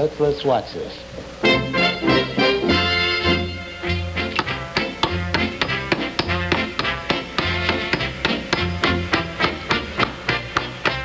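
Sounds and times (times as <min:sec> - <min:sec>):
band playing with steady bass: 0:01.4 - 0:11.0
hammer driving nails into wood: 0:04.4 - 0:08.7.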